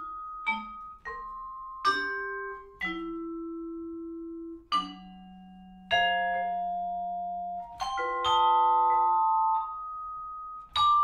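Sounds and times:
marimba notes and chords: 0.0s - 11.0s.

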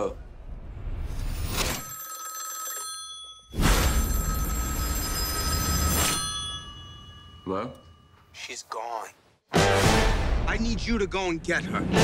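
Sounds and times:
telephone ringing: 1.6s - 8.3s.

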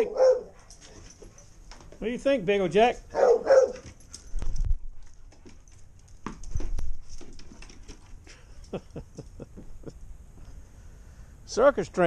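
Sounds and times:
dog barking: 0.0s - 0.6s, 3.1s - 3.9s.

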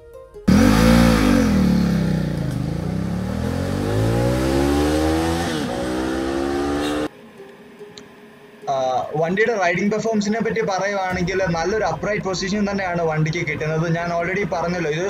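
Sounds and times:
motorcycle engine revving: 0.5s - 7.1s.

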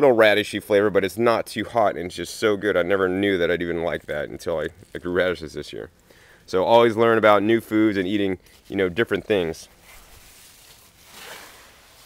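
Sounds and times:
faint rustling: 3.0s - 12.0s.

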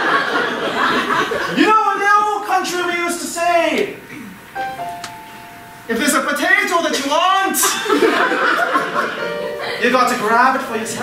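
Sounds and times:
soft piano notes: 4.1s - 11.0s.

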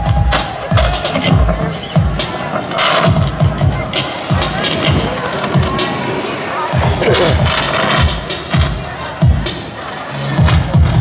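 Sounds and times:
loud live band music: 0.0s - 11.0s.

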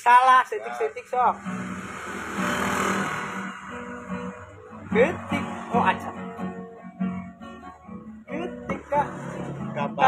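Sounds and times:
acoustic guitar strumming: 0.6s - 10.0s
rushing noise: 1.2s - 6.4s.

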